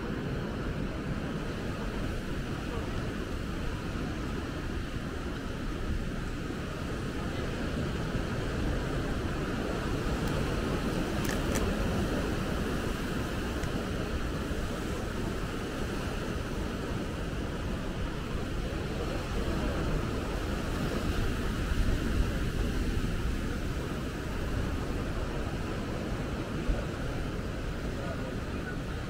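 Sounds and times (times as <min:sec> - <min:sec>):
wind rumbling on microphone: 0:00.0 - 0:29.0.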